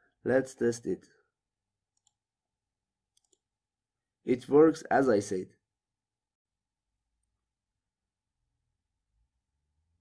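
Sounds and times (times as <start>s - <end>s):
computer mouse click: 1.9s - 2.2s, 3.1s - 3.5s.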